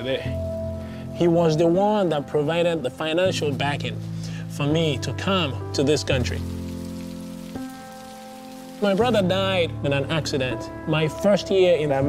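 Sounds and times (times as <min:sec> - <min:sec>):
soft sustained background music: 0:00.0 - 0:12.0.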